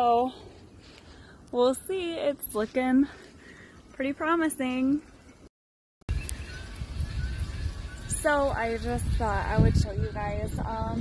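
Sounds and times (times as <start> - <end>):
wind buffeting microphone: 6.1 - 11.0.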